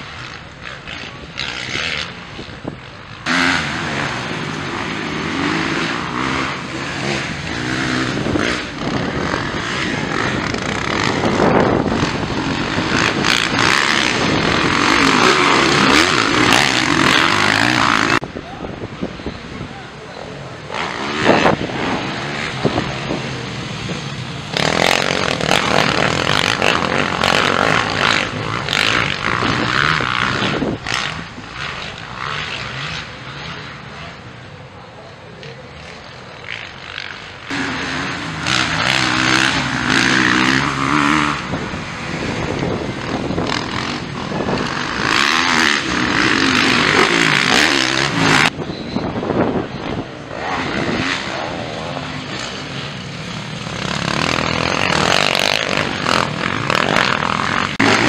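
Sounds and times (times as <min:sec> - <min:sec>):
dirt bike engines revving past: 0:00.0 - 0:58.0.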